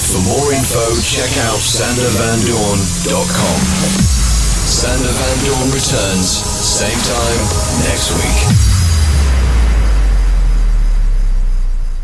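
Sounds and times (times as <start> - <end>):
deep sub-bass rumble: 0.0 - 12.0
faint hiss: 0.1 - 9.1.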